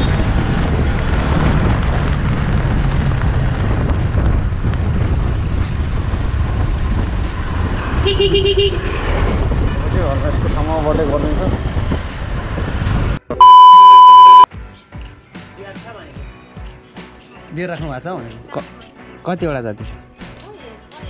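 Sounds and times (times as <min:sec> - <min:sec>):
wind noise: 0:00.0 - 0:13.2
vehicle horn pulses: 0:13.4 - 0:14.4
loud steady high beep: 0:13.4 - 0:14.5.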